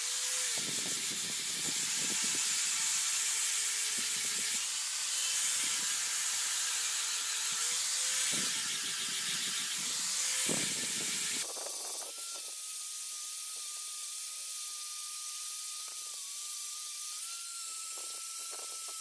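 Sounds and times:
angle grinder disc on stone: 0.0s - 19.0s
grinder motor hum: 0.0s - 19.0s.

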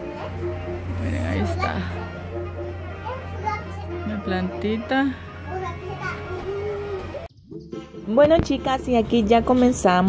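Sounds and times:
child chattering sing-song: 1.6s - 4.0s, 5.5s - 7.2s.

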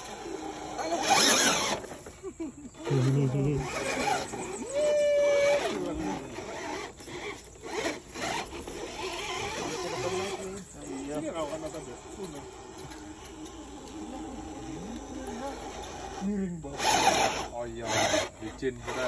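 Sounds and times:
people calling out: 4.0s - 5.9s.

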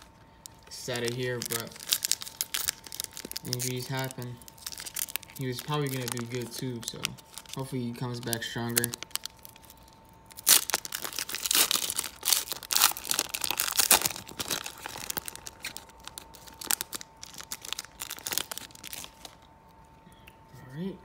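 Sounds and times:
foil wrapper tearing and crinkling: 0.0s - 19.4s.

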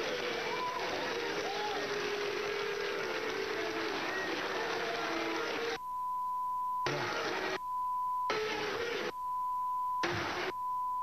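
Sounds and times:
censor bleep tone: 5.8s - 11.0s.

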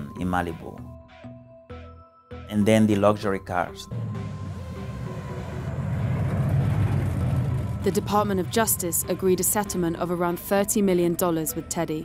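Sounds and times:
car engine rumbling: 3.8s - 10.5s.

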